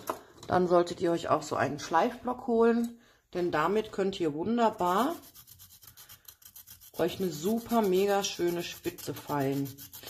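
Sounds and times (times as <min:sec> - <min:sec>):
pencil scratching on sandpaper: 0:04.7 - 0:10.0.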